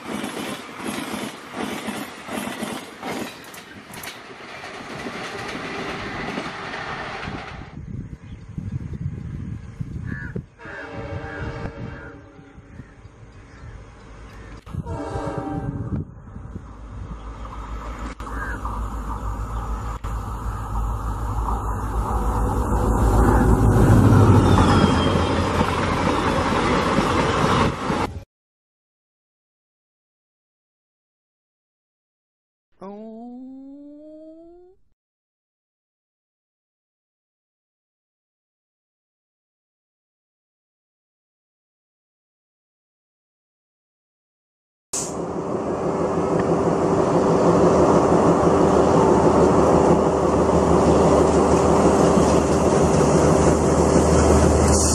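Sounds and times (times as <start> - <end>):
train rumbling past: 0.0 - 28.2, 45.0 - 54.9
train horn blasts: 10.6 - 12.7, 14.7 - 16.1.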